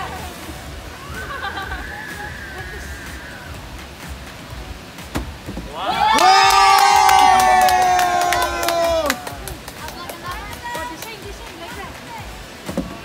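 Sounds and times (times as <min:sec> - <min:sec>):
children cheering: 0:00.9 - 0:03.6, 0:05.7 - 0:09.6
clapping: 0:06.0 - 0:11.7
background chatter: 0:08.2 - 0:13.0.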